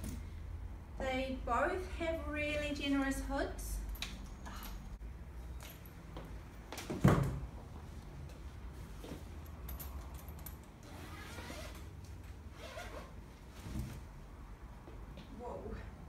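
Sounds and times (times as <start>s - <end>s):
hood rustling: 10.8s - 14.2s.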